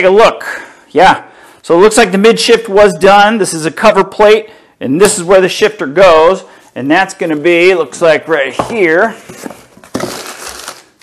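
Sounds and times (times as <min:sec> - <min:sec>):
packing paper crinkling: 0:09.4 - 0:11.0.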